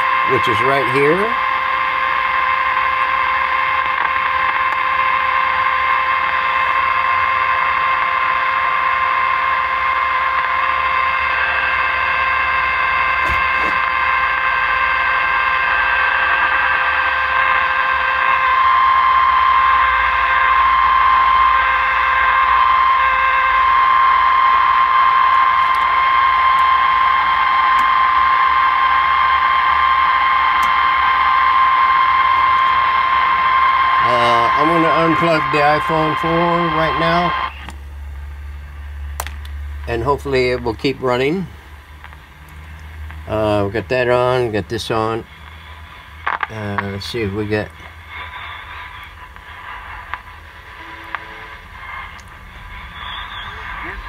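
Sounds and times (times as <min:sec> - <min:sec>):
radio hiss: 0:00.0 - 0:54.0
steady test tone from radio: 0:00.0 - 0:54.0.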